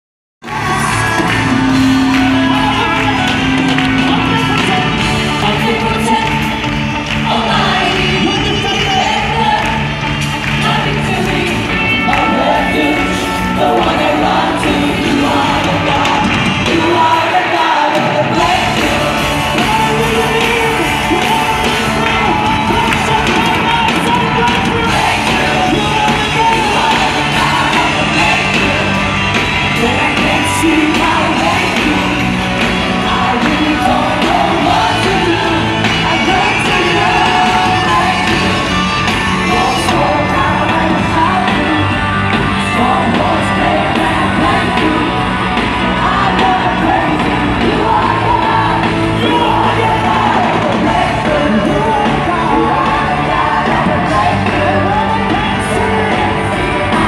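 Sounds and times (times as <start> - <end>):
bass and drums: 0.4 - 57.0
live band playing worship music: 0.4 - 57.0.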